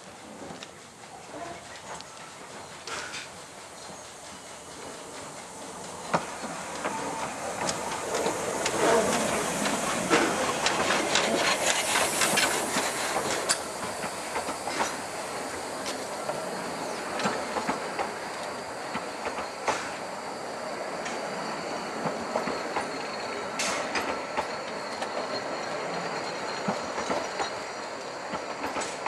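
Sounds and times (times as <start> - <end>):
steam hiss: 0.0 - 29.0
steam locomotive passing: 0.0 - 29.0
wheels clicking over rail joints: 4.2 - 20.0, 26.6 - 29.0.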